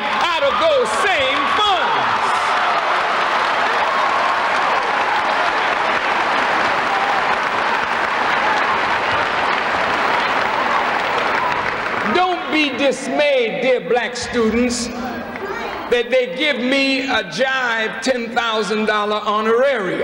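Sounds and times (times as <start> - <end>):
large audience applauding: 0.0 - 12.8
person speaking: 12.0 - 20.0.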